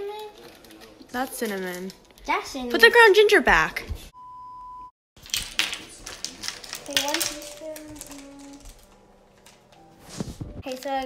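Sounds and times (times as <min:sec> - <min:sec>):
child's voice: 0:00.0 - 0:00.4, 0:06.8 - 0:08.7, 0:10.6 - 0:11.0
plastic spoons clicking: 0:05.2 - 0:09.8
packet crinkling: 0:05.2 - 0:11.0.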